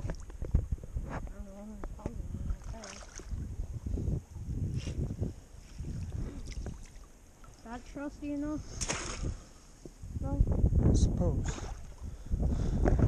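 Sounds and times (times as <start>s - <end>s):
knocks and splashes in water: 0.0s - 1.1s, 2.0s - 3.5s, 8.7s - 9.4s
rumbling wind: 0.0s - 13.0s.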